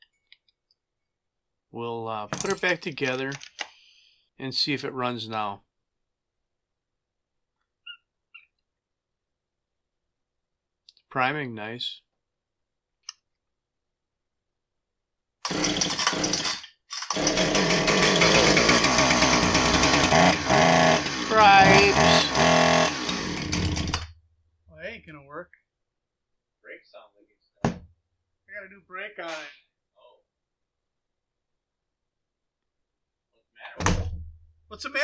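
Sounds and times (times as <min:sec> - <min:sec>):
rubbery primer bulb squeaks: 0:07.8 - 0:08.6
chainsaw running: 0:15.5 - 0:24.0.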